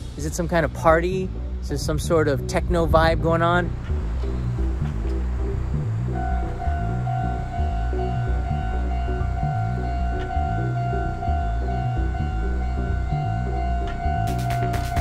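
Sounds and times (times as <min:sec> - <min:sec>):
electronic music with beat: 0:00.0 - 0:15.0
level crossing warning bell: 0:06.1 - 0:15.0.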